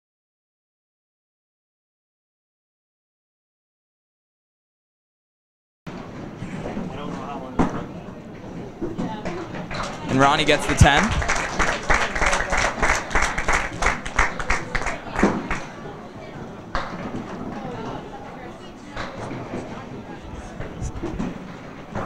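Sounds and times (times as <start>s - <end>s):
background chatter: 5.9s - 22.0s
spectators clapping: 9.7s - 15.7s.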